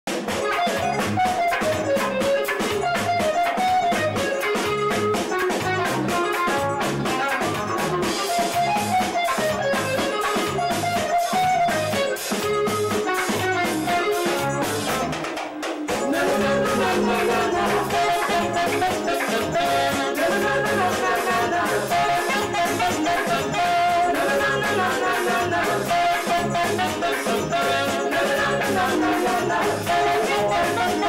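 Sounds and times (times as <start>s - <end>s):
drum kit: 0.1s - 31.0s
electric guitar: 0.1s - 31.0s
saxophones: 0.2s - 31.0s
bass: 0.7s - 15.2s, 16.2s - 31.0s.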